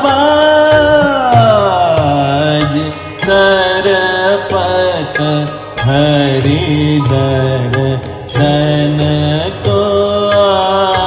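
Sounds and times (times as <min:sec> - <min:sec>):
instrumental accompaniment with drone: 0:00.0 - 0:11.0
man singing ornamented notes: 0:00.0 - 0:11.0.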